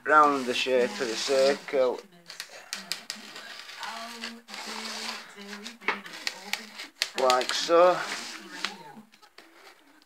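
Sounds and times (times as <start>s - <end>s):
craft knife scoring cardboard: 0.1s - 9.8s.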